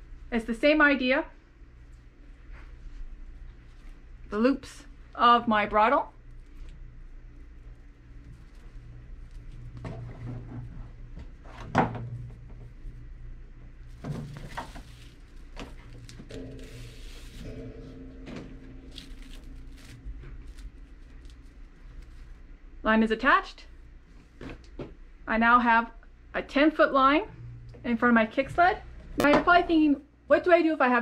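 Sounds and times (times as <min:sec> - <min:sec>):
cord rubbing and rustling: 0:01.8 - 0:05.1, 0:06.1 - 0:17.8, 0:18.4 - 0:22.6, 0:23.7 - 0:25.0.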